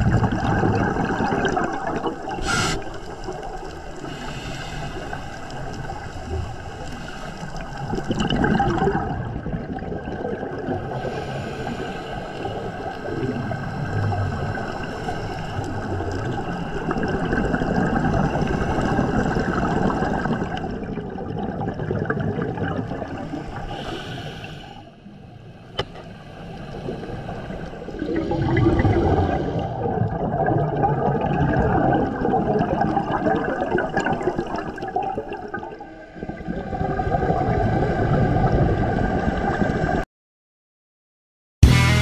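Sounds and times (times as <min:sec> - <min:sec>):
exhaled bubbles gurgling underwater: 0:00.0 - 0:40.0
regulator inhale hiss: 0:02.4 - 0:03.2, 0:04.0 - 0:05.9, 0:06.8 - 0:07.7, 0:11.0 - 0:12.9, 0:23.3 - 0:25.0.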